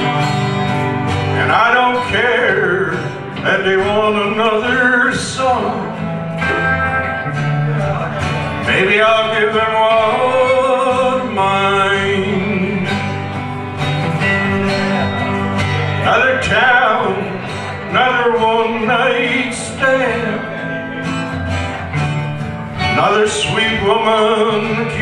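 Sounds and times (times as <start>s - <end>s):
acoustic guitars strummed and picked: 0.0s - 25.0s.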